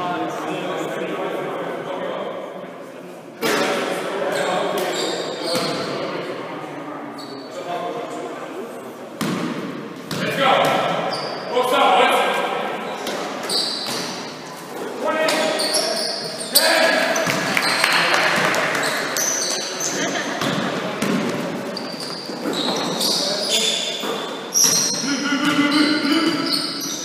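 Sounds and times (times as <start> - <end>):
players calling out: 15.0 - 27.0
basketball bouncing on wooden floor: 20.4 - 21.5.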